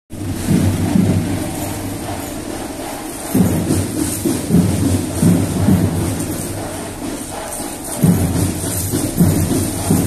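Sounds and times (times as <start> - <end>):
marching band drums playing: 0.1 - 10.0
steady high hiss: 0.2 - 10.0.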